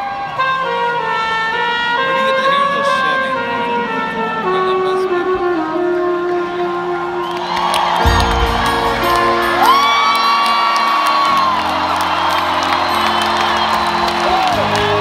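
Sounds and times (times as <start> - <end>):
live concert music: 0.0 - 15.0
audience whooping and cheering: 6.5 - 15.0.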